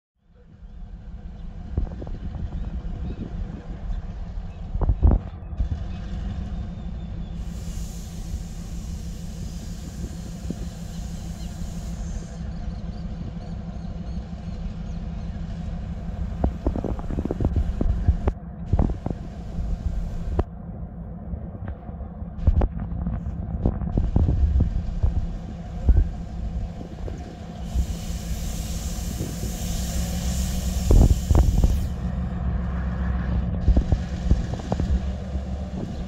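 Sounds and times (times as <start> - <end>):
locomotive diesel engine rumbling: 0.2 - 36.0
hiss: 7.4 - 12.4, 25.5 - 32.1.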